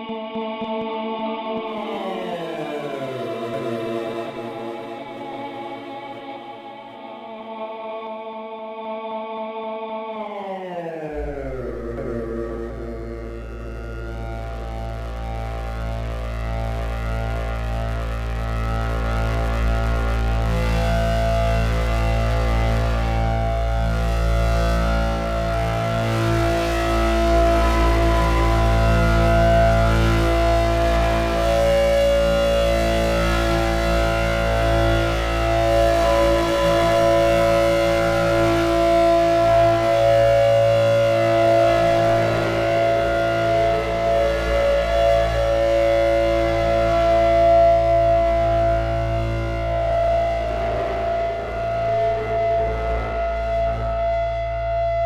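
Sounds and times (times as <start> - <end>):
synthesizer ambient drone: 0.0 - 55.0.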